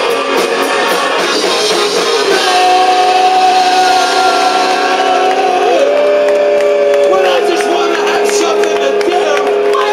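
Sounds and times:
distorted guitar drone: 0.0 - 9.9.

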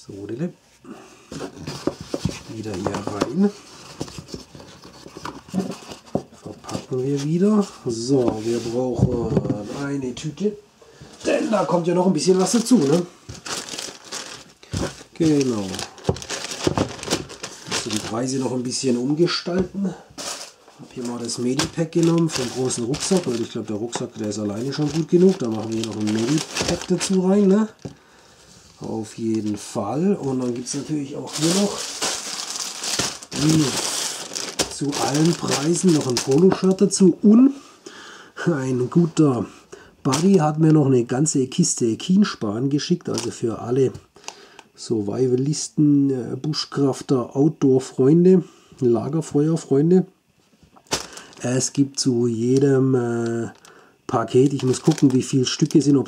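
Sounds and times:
plastic bags crinkling: 11.2 - 28.0, 28.8 - 37.1, 40.0 - 40.8, 43.0 - 43.4, 50.8 - 56.0.

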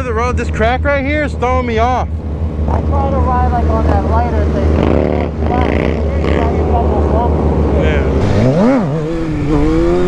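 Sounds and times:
man talking: 0.0 - 2.1, 2.7 - 8.3
motorcycle engines idling: 0.0 - 10.0.

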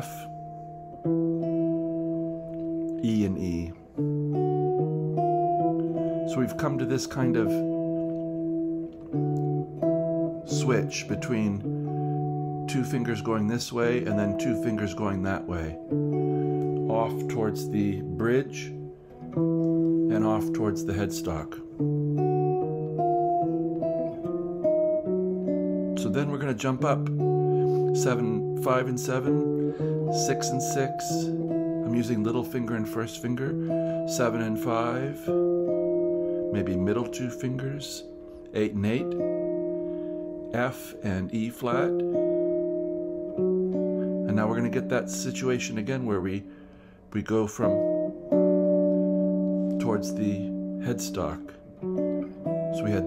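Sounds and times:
guitar two-note chords: 0.0 - 53.0.

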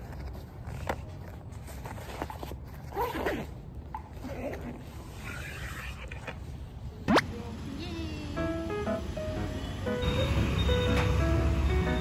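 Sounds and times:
zipper being pulled shut: 2.1 - 6.3.

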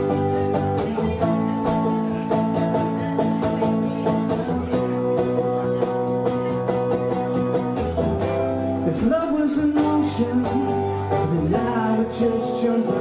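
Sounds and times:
acoustic guitar strumming chords: 0.0 - 13.0.

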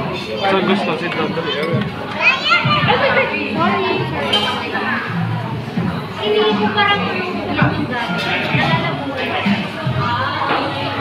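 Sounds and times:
chatter of voices: 0.0 - 11.0
child's high voice: 2.2 - 3.2.

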